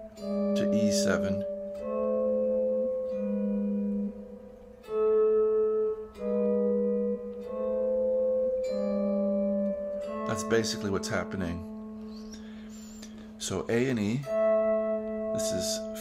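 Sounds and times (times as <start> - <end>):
electric guitar played slowly: 0.0 - 16.0.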